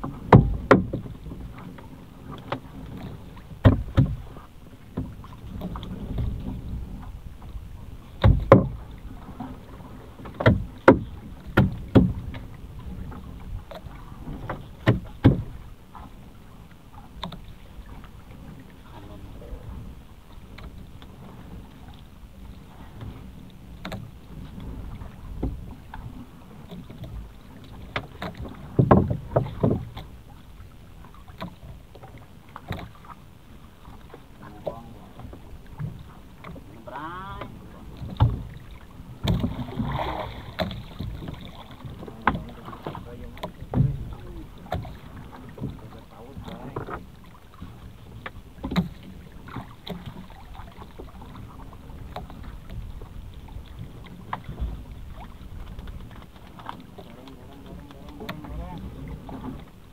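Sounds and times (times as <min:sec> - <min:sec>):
knocks and clunks on boat: 0:00.0 - 0:59.9
water rumble: 0:00.0 - 0:59.9
wind: 0:00.0 - 0:59.9.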